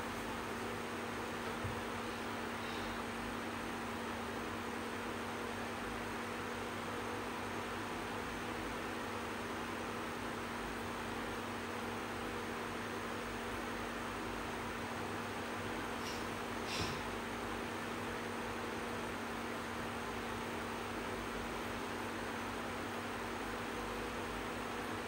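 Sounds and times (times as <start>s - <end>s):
electric fan running: 0.0s - 25.0s.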